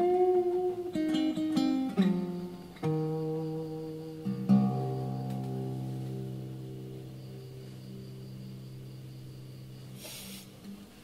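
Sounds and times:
acoustic guitar chord ringing: 0:00.0 - 0:10.2.

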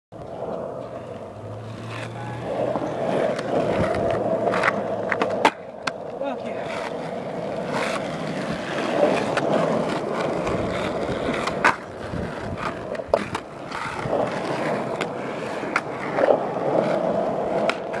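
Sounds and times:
skateboard wheels rolling on asphalt: 0:00.1 - 0:18.0
skateboard clacks popping and landing: 0:01.9 - 0:18.0.

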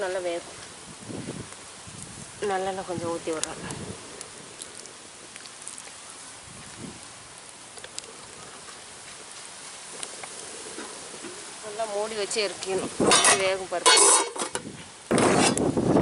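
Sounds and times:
hot oil sizzling: 0:00.0 - 0:16.0
faint pops and ticks: 0:03.3 - 0:06.0, 0:07.7 - 0:11.4.

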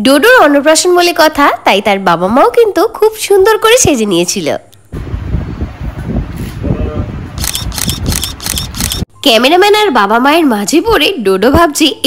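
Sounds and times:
camera shutter clicking: 0:07.4 - 0:09.1.

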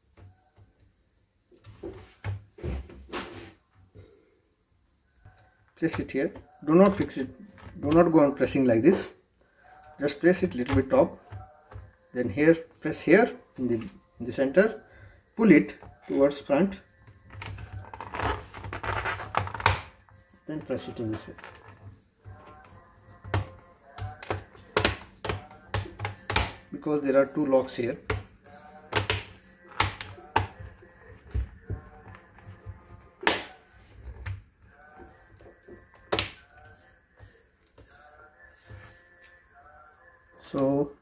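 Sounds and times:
quiet background music: 0:00.0 - 0:41.0
laptop cover scraping against chassis: 0:17.4 - 0:19.8.

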